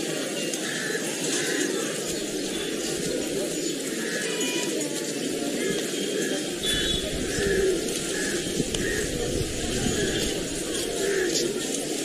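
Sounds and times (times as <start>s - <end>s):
murmur of open square: 0.0s - 12.0s
pigeons cooing: 0.0s - 12.0s.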